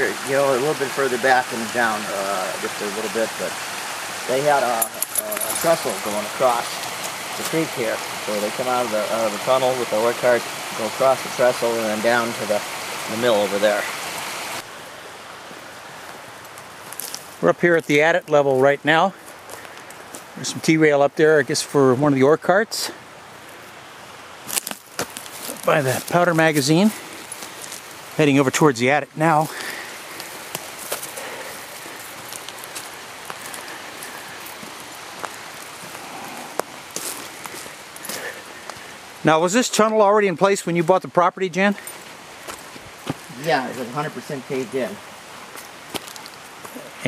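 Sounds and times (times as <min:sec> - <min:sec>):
creek running: 0:00.0 - 0:47.0
footsteps on dirt trail: 0:19.2 - 0:20.3, 0:24.4 - 0:28.1, 0:29.4 - 0:38.9, 0:41.7 - 0:43.9, 0:45.4 - 0:46.8.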